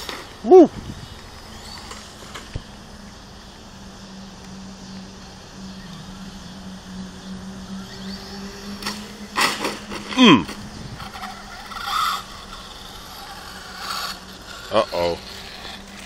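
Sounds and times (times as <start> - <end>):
electric toy truck hum: 0.0 - 16.0.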